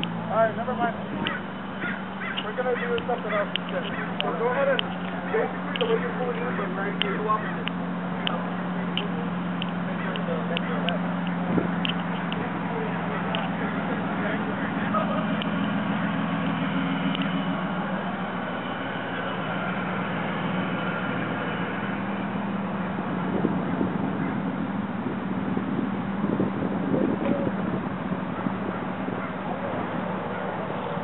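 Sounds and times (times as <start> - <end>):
car engine running at low revs: 0.0 - 31.0
faint voices: 0.0 - 31.0.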